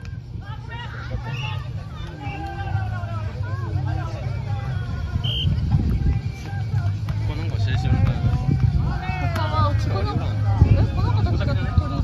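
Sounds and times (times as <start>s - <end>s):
people chattering and calling: 0.0s - 12.0s
steady low rumble: 0.0s - 12.0s.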